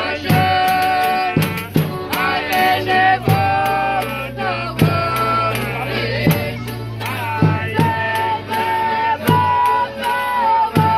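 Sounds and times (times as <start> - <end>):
low drum beats: 0.0 - 10.9
strummed acoustic guitars: 0.0 - 10.9
voices singing long notes: 0.0 - 10.9.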